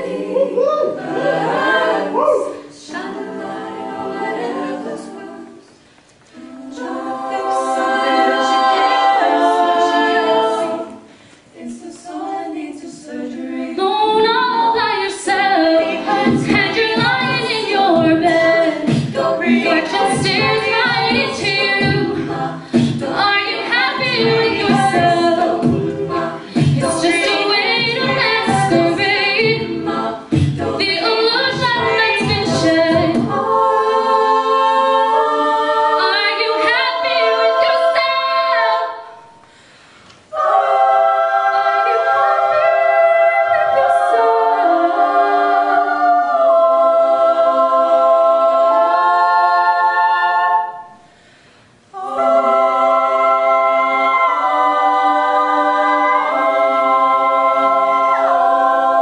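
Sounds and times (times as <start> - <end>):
women singing close harmony: 0.0 - 39.4, 40.2 - 51.2, 51.8 - 59.0
vocal percussion beats: 13.8 - 59.0.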